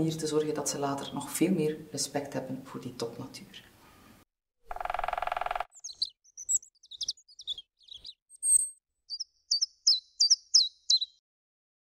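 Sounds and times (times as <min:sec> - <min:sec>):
bird song: 0:00.4 - 0:01.8, 0:04.7 - 0:11.2.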